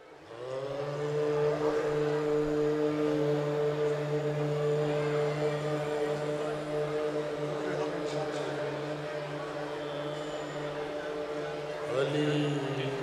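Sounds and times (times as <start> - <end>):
men's chorus holding a drone: 0.3 - 13.0.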